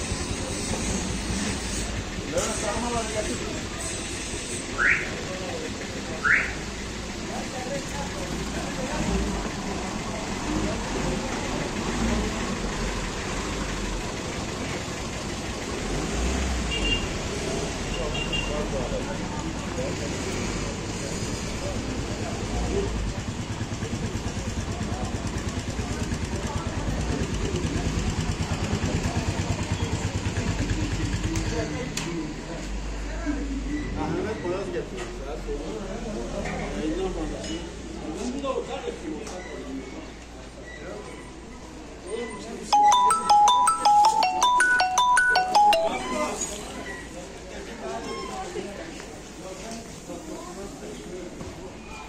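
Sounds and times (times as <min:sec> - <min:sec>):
motor vehicle noise: 0:00.0 - 0:38.0
engine running close by: 0:08.1 - 0:18.0.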